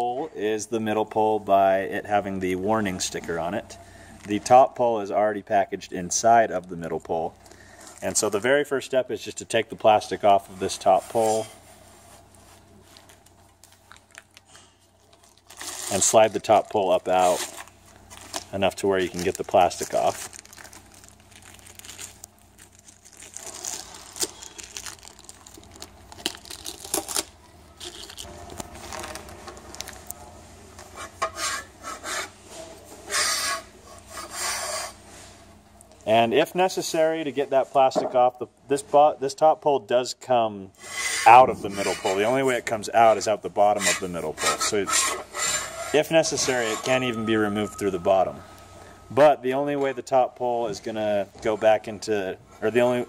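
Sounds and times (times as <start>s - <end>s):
plastic wrap crinkling: 12.2s - 30.3s.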